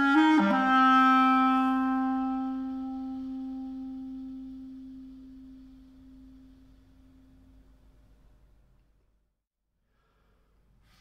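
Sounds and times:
clarinet holding low note: 0.0 - 7.8.

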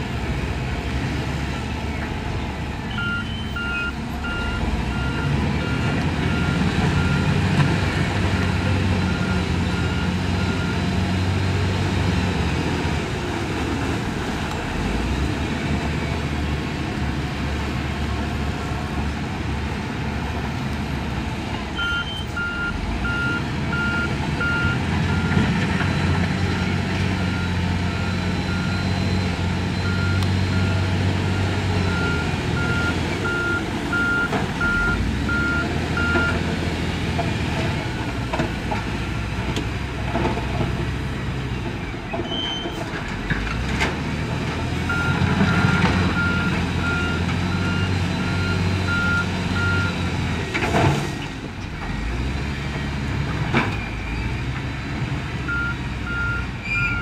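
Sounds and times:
diesel engine working: 0.0 - 57.0
reversing alarm beeping: 2.9 - 7.4, 21.8 - 25.3, 26.6 - 36.4, 44.9 - 50.1, 55.5 - 57.0.

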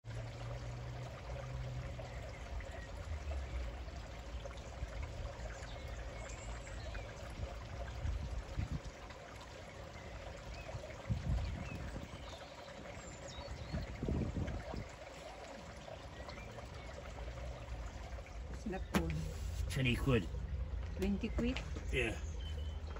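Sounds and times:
running water hiss: 0.1 - 20.5
low rumbles: 13.0 - 22.9.

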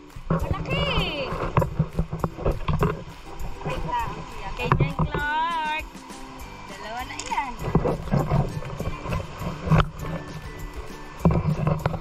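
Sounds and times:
stream water over rocks: 0.0 - 12.0.

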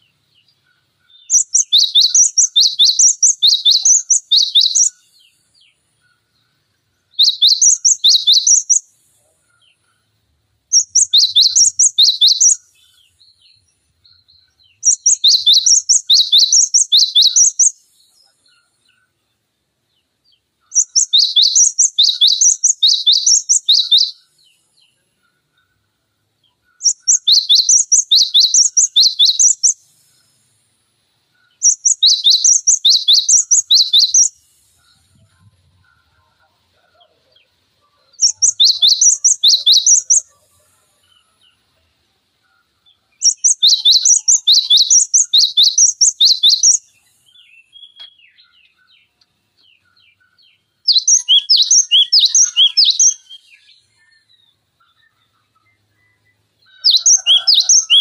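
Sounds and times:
bird singing high whistled notes: 0.0 - 6.3, 7.1 - 9.0, 10.7 - 19.1, 20.6 - 25.0, 26.5 - 30.0, 31.4 - 36.0, 37.9 - 40.7, 43.1 - 58.0.

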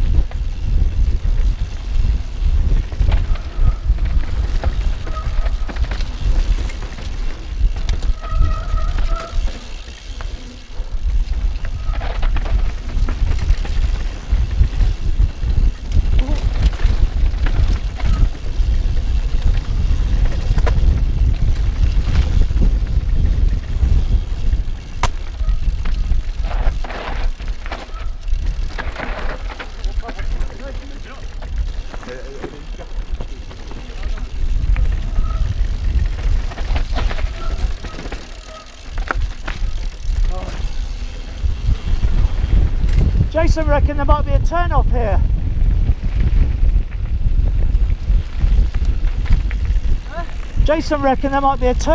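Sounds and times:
wind rumble on microphone: 0.0 - 38.0, 39.0 - 51.9
bike rattling: 0.0 - 51.9
bike rolling on gravel: 0.0 - 51.9.

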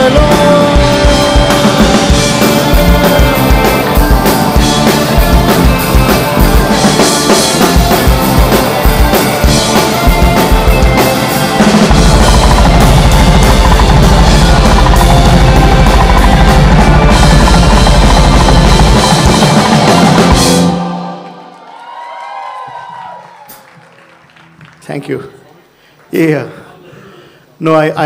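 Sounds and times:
rapid bass drum run: 0.0 - 20.8
electric bass guitar: 0.0 - 21.2
rock band playing loudly: 0.0 - 21.4.

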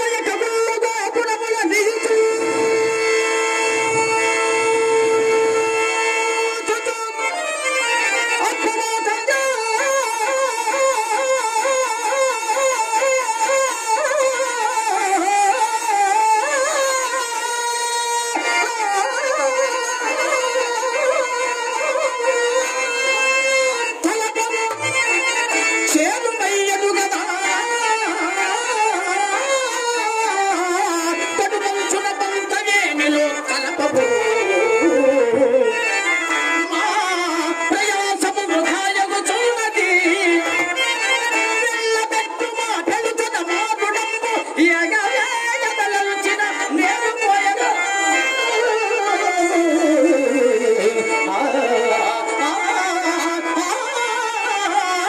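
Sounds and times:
man singing ornamented melody: 0.0 - 55.0.

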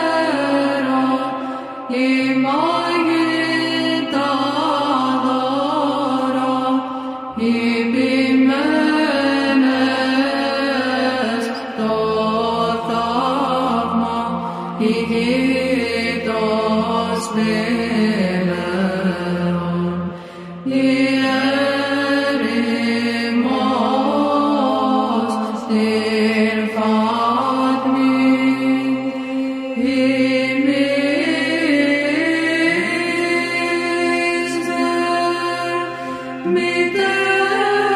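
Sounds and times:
low held vocal drone: 0.0 - 37.9
men singing chant: 7.4 - 19.8, 20.6 - 37.9.

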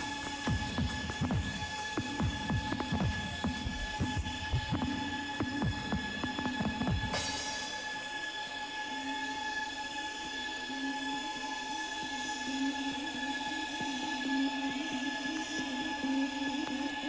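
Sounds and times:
kick drum: 0.0 - 7.3.

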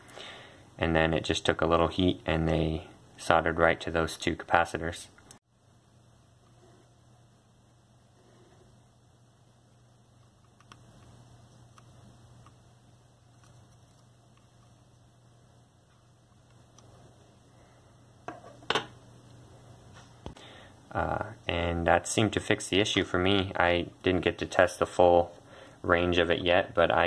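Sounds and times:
low steady hum: 0.0 - 27.0.

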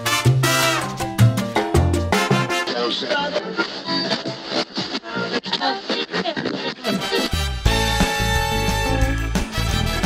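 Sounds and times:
upbeat instrumental music: 0.0 - 10.0.

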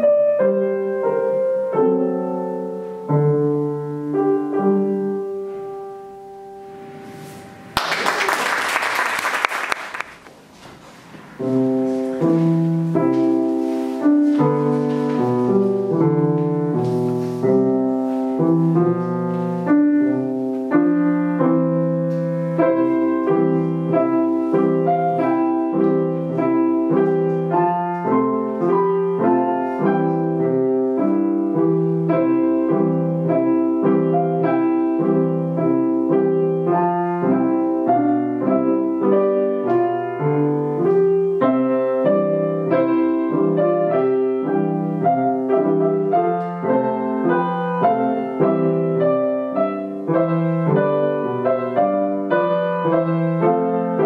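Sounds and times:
grand piano four hands: 0.0 - 9.0, 9.6 - 54.0.

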